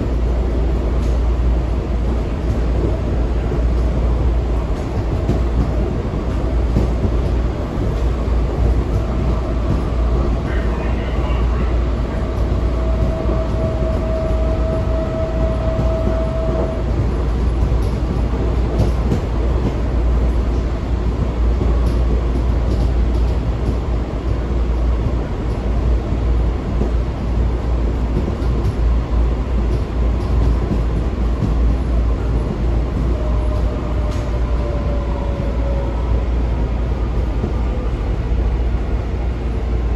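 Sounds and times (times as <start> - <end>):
train wheels rumbling on track: 0.0 - 39.9.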